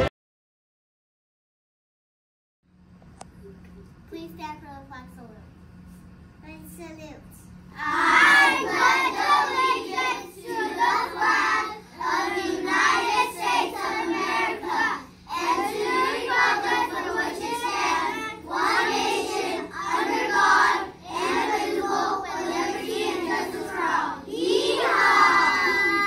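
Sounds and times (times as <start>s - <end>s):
children reciting in unison: 7.8s - 26.0s.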